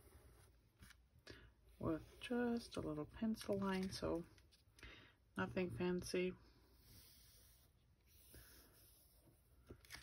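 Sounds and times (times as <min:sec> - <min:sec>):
pencil scratching on card: 0:06.8 - 0:09.3.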